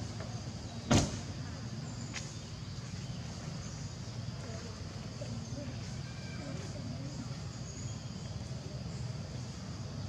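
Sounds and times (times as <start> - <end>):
short thump: 0.9 - 1.3.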